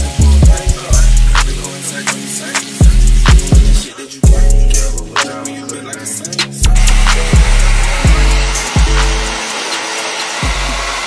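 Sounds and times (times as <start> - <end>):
hip-hop music with deep bass: 0.0 - 11.0
hair dryer blowing: 6.7 - 11.0.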